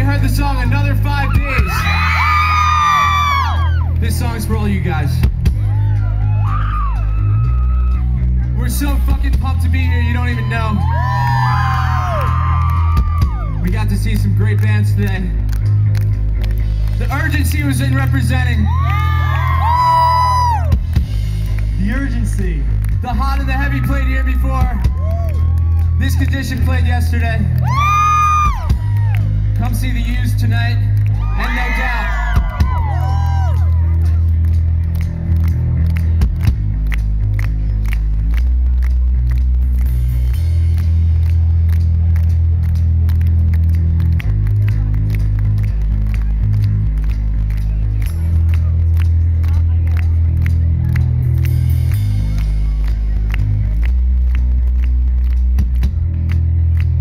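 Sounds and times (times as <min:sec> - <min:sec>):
bass guitar: 0:00.0 - 0:57.0
drum kit beat: 0:19.0 - 0:31.4.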